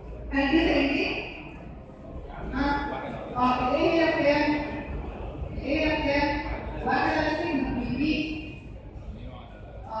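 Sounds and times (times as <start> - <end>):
woman lecturing into microphone: 0.3 - 1.5, 2.5 - 4.9, 5.6 - 8.6.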